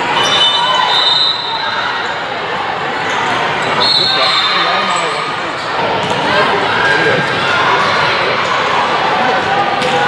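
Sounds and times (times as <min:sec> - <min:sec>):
voices in echoing hall: 0:00.0 - 0:10.0.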